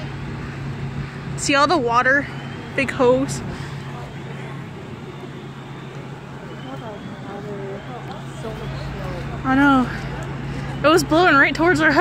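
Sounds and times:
fire engine running: 0:00.0 - 0:12.0
faint distant voices: 0:01.4 - 0:12.0.

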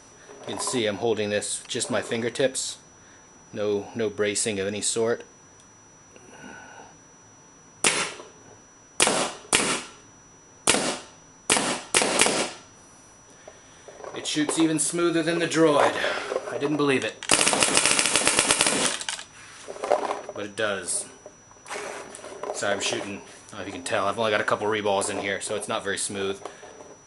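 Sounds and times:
paintball marker shot: 0:07.8 - 0:08.2, 0:09.0 - 0:09.9, 0:10.7 - 0:12.6.

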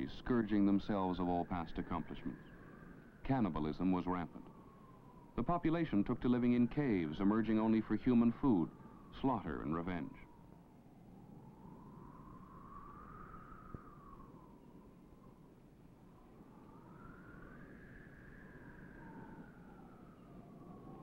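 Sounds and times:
eerie whistling tone: 0:00.0 - 0:21.0.

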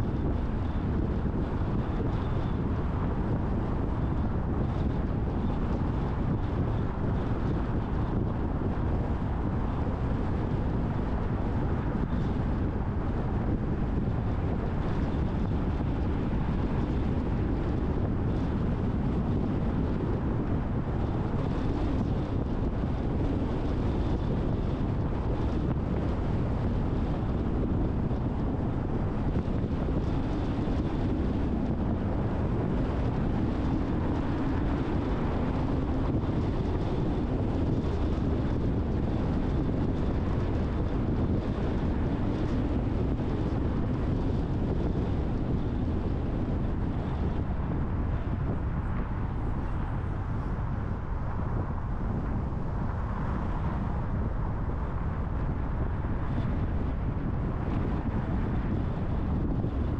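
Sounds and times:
car tyres and engine rumble: 0:00.0 - 0:59.9
wind noise on microphone: 0:00.0 - 0:59.9.

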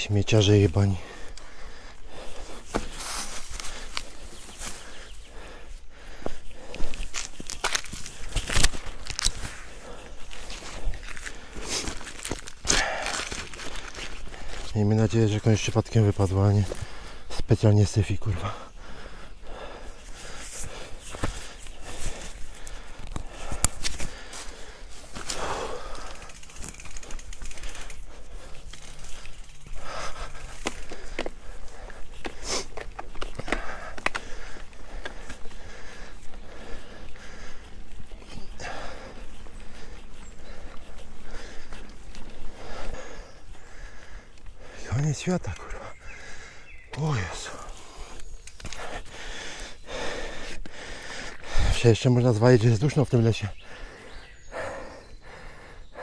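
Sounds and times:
bike tyres on dirt trail: 0:00.0 - 0:56.0
rider breathing hard: 0:00.8 - 0:15.3, 0:16.5 - 0:17.5, 0:18.3 - 0:52.6, 0:53.3 - 0:56.0
bike rattling over bumps: 0:18.5 - 0:44.8.

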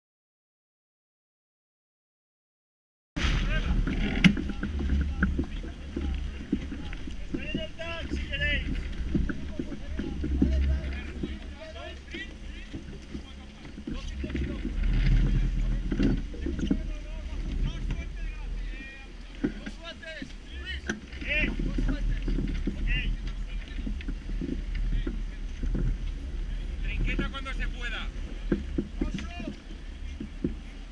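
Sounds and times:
steady low rumble: 0:03.2 - 0:30.9
wind buffeting microphone: 0:03.2 - 0:30.9
crew voices: 0:03.4 - 0:30.9.

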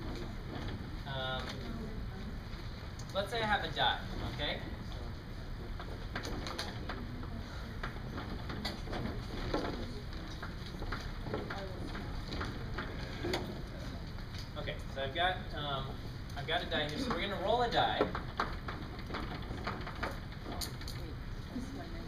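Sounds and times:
room hum: 0:00.0 - 0:22.0.

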